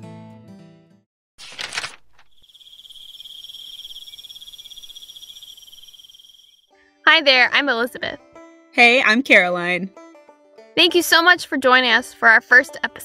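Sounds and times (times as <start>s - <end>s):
insect trilling: 2.1s - 6.7s.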